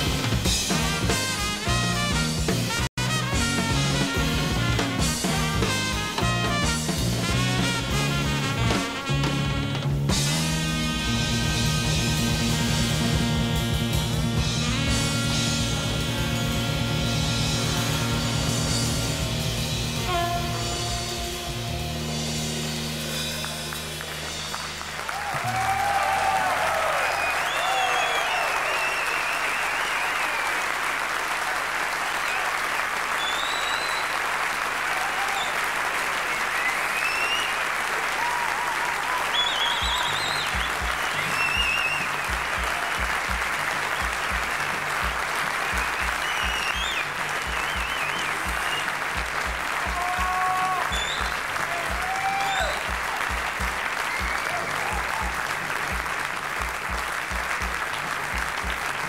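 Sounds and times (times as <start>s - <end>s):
audience applauding: 22.1s - 59.0s
shouts of approval: 25.1s - 30.5s, 34.9s - 35.7s, 38.1s - 40.6s, 49.8s - 53.0s, 54.1s - 55.4s
whistles: 26.9s - 30.6s, 32.0s - 34.3s, 35.2s - 37.7s, 39.1s - 42.5s, 45.7s - 49.2s, 50.7s - 53.0s, 54.0s - 55.3s.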